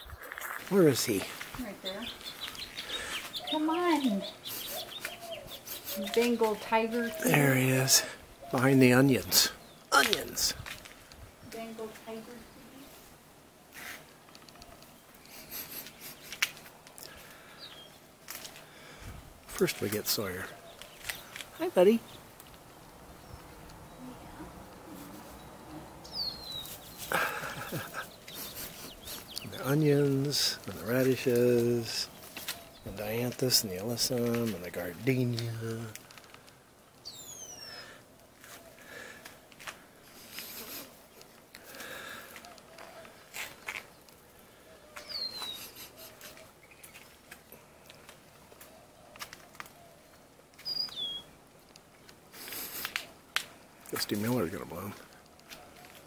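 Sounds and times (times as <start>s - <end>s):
rustling: 9.9s - 56.0s
bird whistling call: 37.1s - 37.9s, 45.0s - 46.1s, 50.6s - 51.4s.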